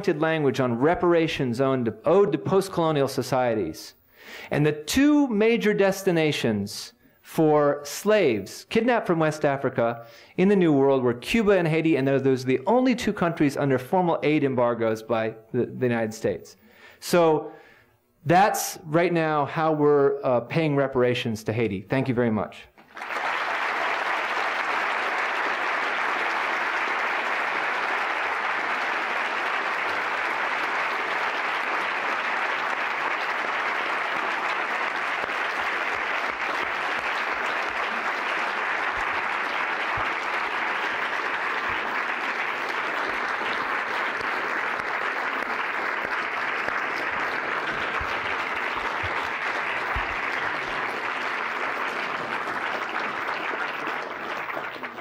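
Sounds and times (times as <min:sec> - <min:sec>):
large audience applauding: 0:22.8 - 0:55.0.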